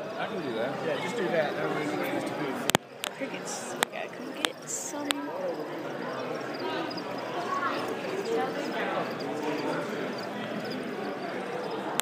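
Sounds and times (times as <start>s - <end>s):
crowd chatter: 0.0s - 12.0s
crickets chirping: 2.9s - 12.0s.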